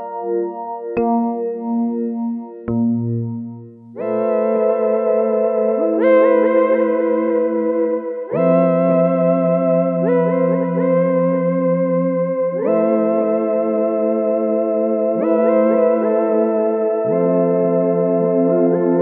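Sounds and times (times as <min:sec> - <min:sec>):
synthesizer pad chords: 0:00.0 - 0:19.0.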